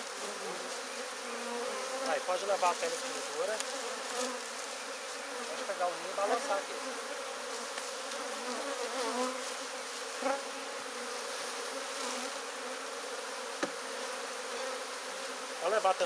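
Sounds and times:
honeybees buzzing: 0.0 - 16.0.

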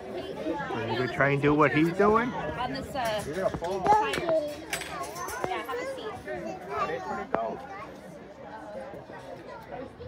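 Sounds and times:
children chattering and calling: 0.0 - 10.0.

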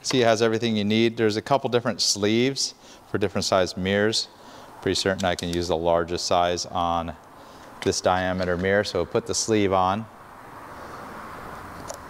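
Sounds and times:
workshop background hiss: 0.0 - 11.6.

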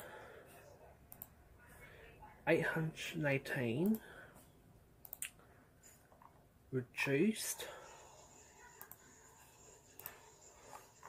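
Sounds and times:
faint clicks: 1.1 - 1.3, 5.0 - 5.4.

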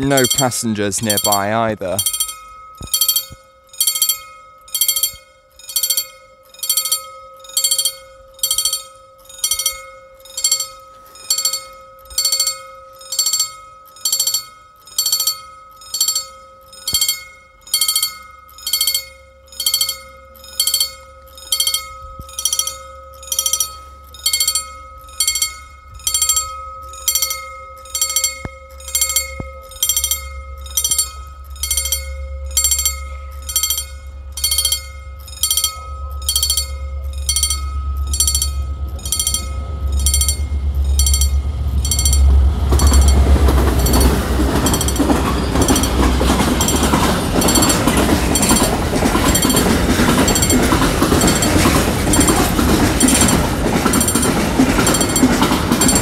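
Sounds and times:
level crossing bell ringing: 0.0 - 56.0
low rumble: 28.8 - 56.0.

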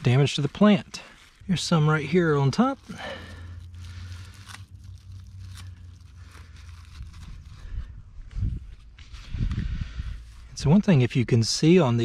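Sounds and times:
leaves rustling and crackling: 0.0 - 11.1
steady low rumble: 0.0 - 12.0.

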